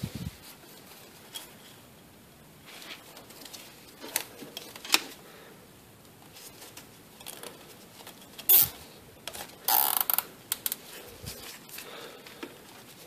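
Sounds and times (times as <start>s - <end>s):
zip tie ratcheting: 8.4s - 8.8s, 9.6s - 10.8s.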